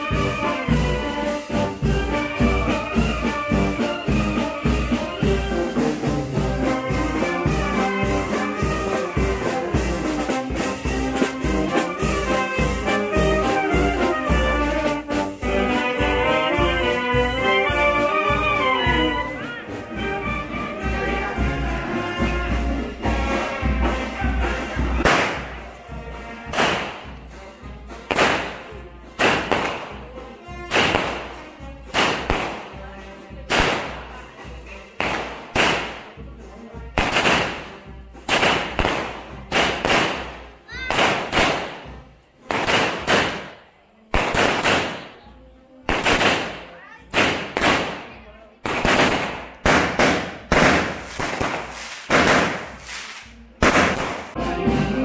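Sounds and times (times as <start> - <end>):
fireworks banging: 24.9 - 25.8, 26.5 - 27.3, 28.1 - 30.1, 30.7 - 31.3, 31.9 - 32.8, 35.0 - 36.2, 37.0 - 45.2, 45.9 - 54.4.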